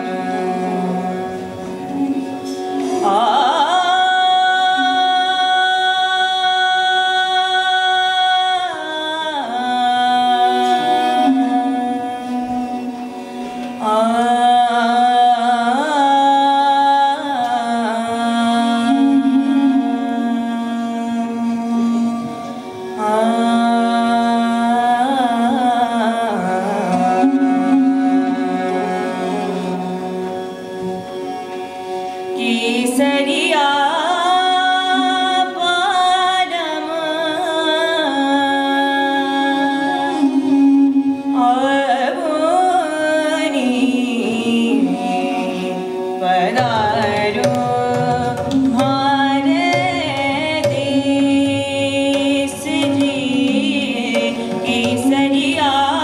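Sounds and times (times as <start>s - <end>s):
woman singing: 0.0s - 30.4s, 32.4s - 56.0s
bowed string instrument: 0.0s - 56.0s.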